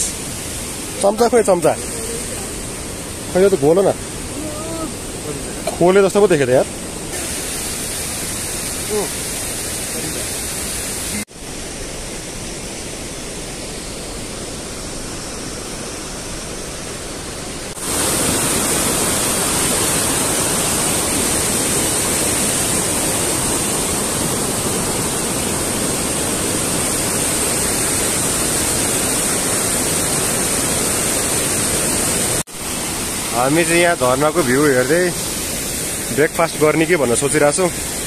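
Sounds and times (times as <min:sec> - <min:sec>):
stream rushing over boulders: 0:00.0 - 0:38.0.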